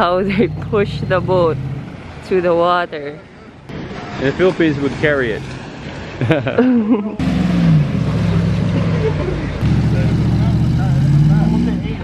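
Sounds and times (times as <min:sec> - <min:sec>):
woman speaking: 0:00.0 - 0:01.6, 0:02.2 - 0:03.2
truck engine under load: 0:00.0 - 0:02.5, 0:07.2 - 0:12.0.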